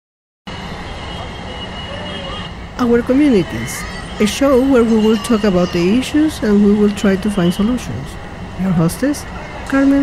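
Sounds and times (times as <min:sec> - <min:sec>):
city traffic rumble: 0:00.5 - 0:10.0.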